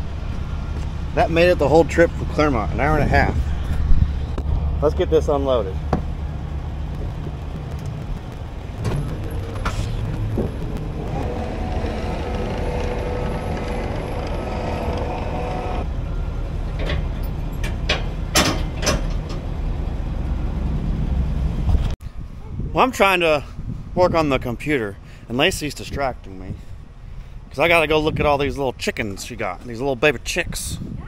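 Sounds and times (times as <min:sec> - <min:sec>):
steady whine: 0:00.0 - 0:21.6
diesel engine running: 0:00.0 - 0:22.0
metal clunks: 0:16.7 - 0:19.5.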